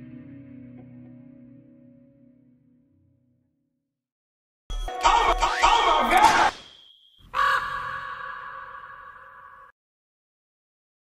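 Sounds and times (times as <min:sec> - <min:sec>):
raven caw with ringing tail: 0:07.2 - 0:09.8.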